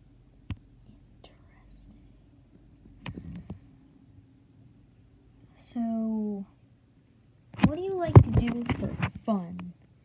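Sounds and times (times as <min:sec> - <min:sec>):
low steady hum: 0:00.0 - 0:10.0
faint whisper: 0:00.8 - 0:02.4.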